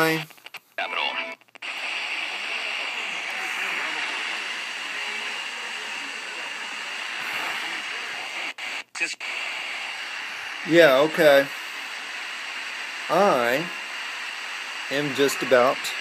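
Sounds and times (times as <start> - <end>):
faint radio station: 0.0 - 16.0
radio static hiss: 0.0 - 16.0.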